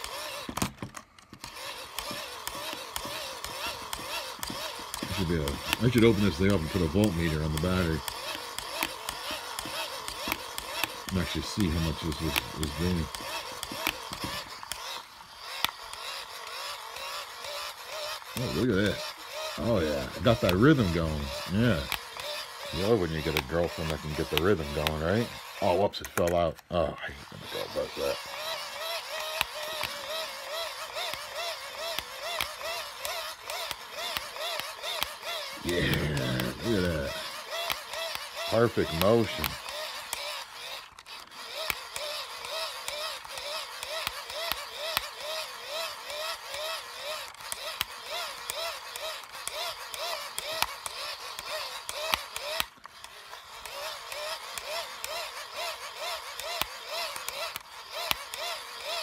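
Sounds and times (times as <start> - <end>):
hand-crank dynamo clicking: 0.0 - 59.0.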